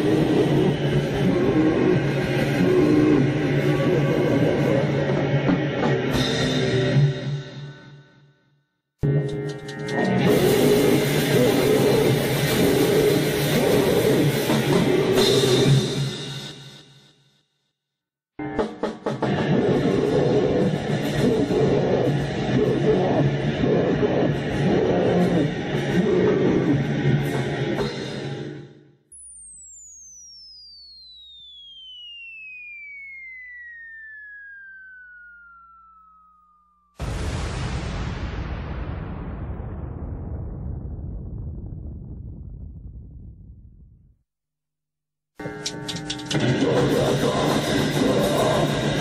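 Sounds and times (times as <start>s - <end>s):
heavily distorted noise music: 0.0s - 7.8s, 9.0s - 16.6s, 18.4s - 28.6s, 45.4s - 49.0s
falling whistling tone: 30.0s - 37.0s.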